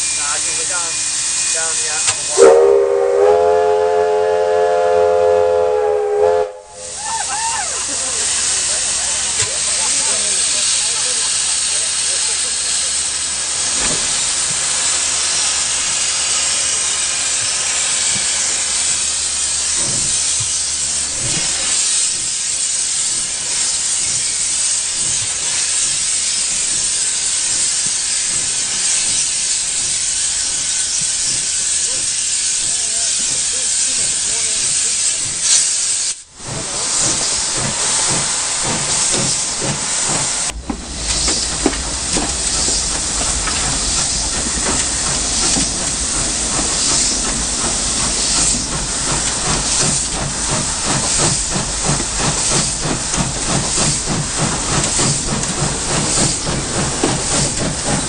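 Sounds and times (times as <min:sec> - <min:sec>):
steam hissing: 0:00.0 - 0:58.0
steam locomotive whistle: 0:02.1 - 0:08.0.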